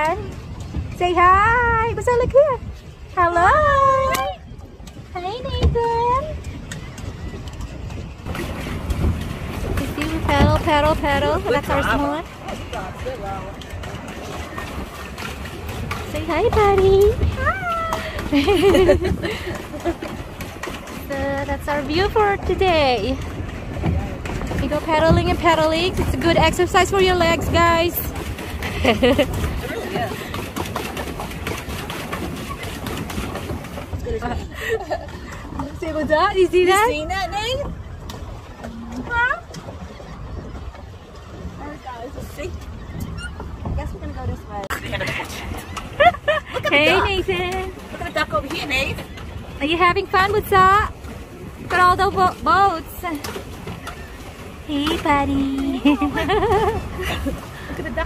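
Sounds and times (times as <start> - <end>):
wind rumbling on microphone: 0.0 - 58.0
person laughing: 18.3 - 20.0, 46.0 - 47.0, 55.7 - 57.4.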